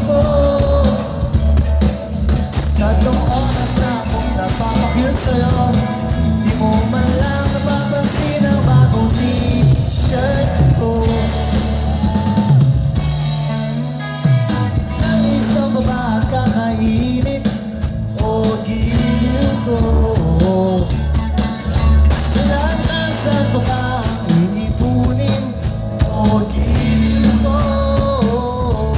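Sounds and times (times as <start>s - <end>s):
drum kit: 0.0s - 28.9s
electric guitars: 0.0s - 28.9s
low bass: 0.0s - 28.9s.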